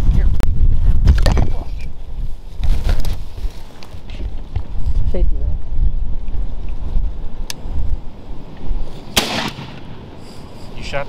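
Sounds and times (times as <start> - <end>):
shotgun shot with echo: 9.2 - 9.9.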